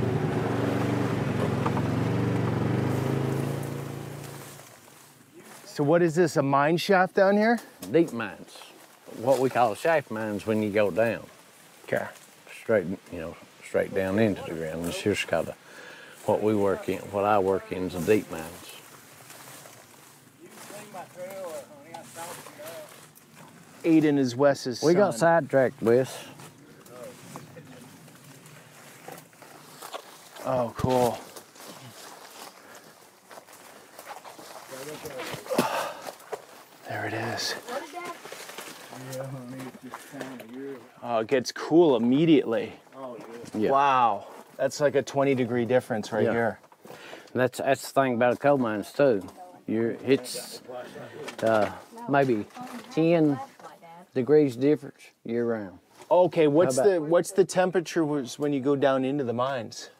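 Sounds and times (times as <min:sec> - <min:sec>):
utility vehicle engine running: 0:00.0 - 0:04.5
rustling of leafy undergrowth: 0:00.6 - 0:06.7, 0:07.6 - 0:41.1, 0:47.9 - 0:53.8
faint footsteps in undergrowth: 0:01.2 - 0:06.7, 0:07.5 - 0:54.1, 0:55.7 - 0:56.6
light crackles: 0:26.1 - 0:40.6.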